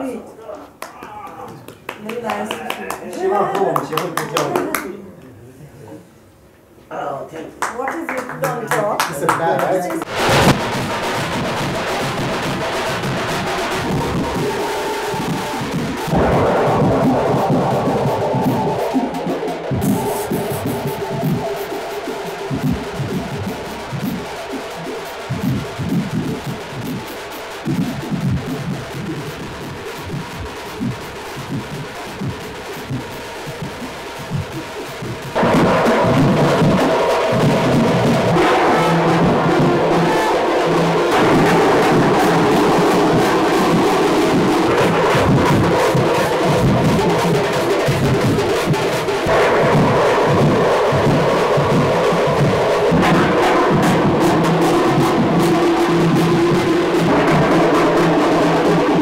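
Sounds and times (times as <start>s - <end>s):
drums beaten with sticks: 10.0s - 59.0s
sustained pitched tones: 10.0s - 59.0s.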